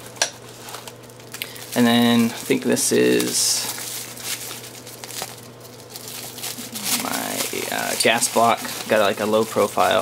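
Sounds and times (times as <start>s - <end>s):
plastic bag crinkling: 0.5s - 10.0s.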